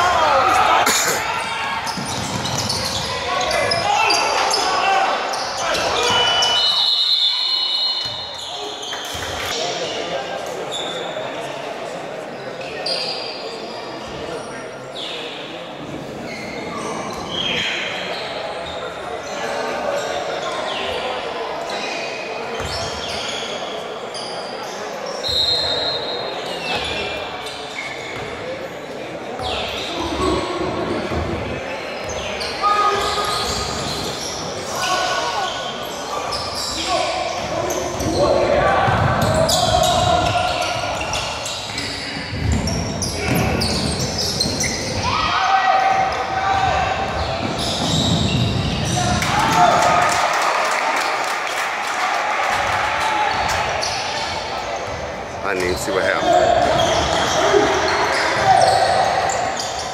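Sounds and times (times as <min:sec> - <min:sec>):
sneakers squeaking: 0:01.2 - 0:10.0, 0:10.6 - 0:11.2, 0:12.6 - 0:49.6, 0:52.6 - 0:59.9
players calling out: 0:52.5 - 0:59.9.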